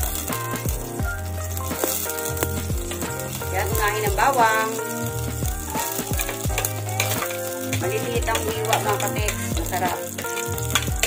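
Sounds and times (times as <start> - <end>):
background music with bass line: 0.0 - 11.0
garlic sizzling in hot oil: 0.0 - 11.0.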